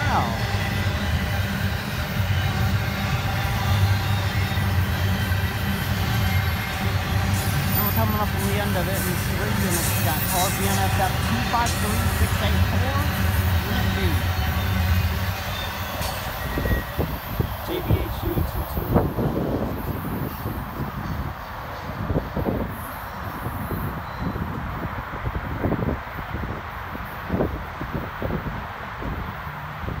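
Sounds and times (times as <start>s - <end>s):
freight train rumbling on rails: 0.0s - 30.0s
wind buffeting microphone: 16.3s - 30.0s.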